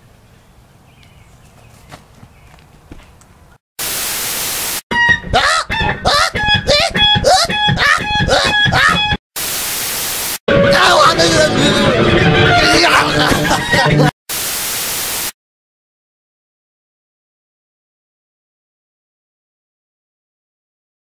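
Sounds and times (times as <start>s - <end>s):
static hiss: 3.8s - 4.8s, 9.4s - 10.4s, 14.3s - 15.4s
distorted pitched voice: 10.5s - 14.1s
loud voice: 10.6s - 12.0s, 12.6s - 13.5s.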